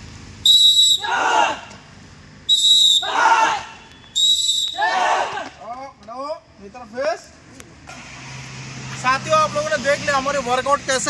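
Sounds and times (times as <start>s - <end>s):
shrill whistle blasts: 0.4s - 1.3s, 2.5s - 5.1s
group shouting in unison: 1.0s - 1.8s, 3.0s - 3.8s, 4.7s - 5.6s.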